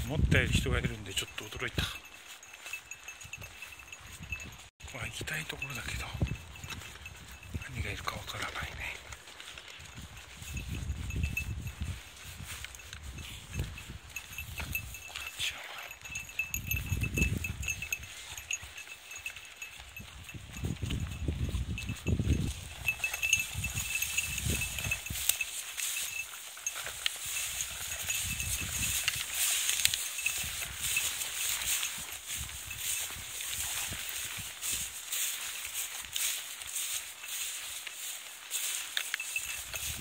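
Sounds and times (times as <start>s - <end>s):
wind rumble on microphone: 0.0s - 1.1s, 1.7s - 37.8s, 39.3s - 40.0s
dry grass rustling: 0.0s - 40.0s
footsteps in grass: 0.0s - 40.0s.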